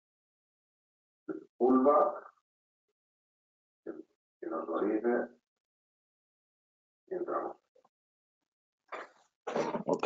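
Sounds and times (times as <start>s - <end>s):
man speaking over video call: 1.3s - 2.4s, 3.9s - 5.4s, 7.1s - 7.7s.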